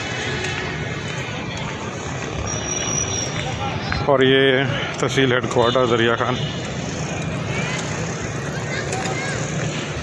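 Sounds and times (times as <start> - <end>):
road and traffic noise: 0.0 - 10.0.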